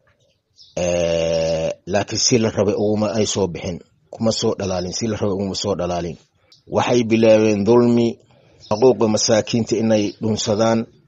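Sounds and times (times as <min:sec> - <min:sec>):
man speaking: 0:00.8 - 0:11.0.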